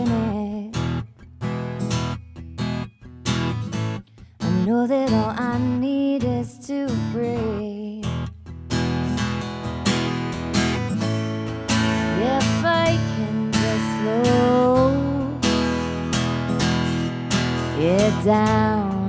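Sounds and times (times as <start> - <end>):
acoustic guitar strumming: 0.0 - 19.0
woman singing sliding notes: 12.1 - 15.4.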